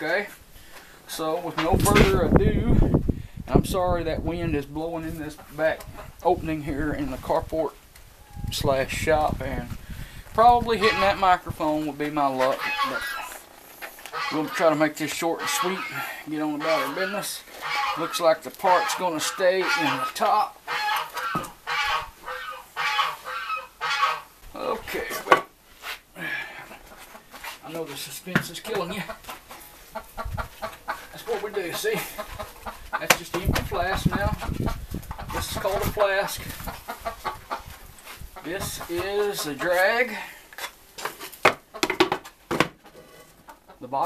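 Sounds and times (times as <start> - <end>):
poultry calling: 10.6 - 11.5, 12.2 - 25.2, 28.7 - 40.4
wooden knocks and clatters: 41.0 - 43.1.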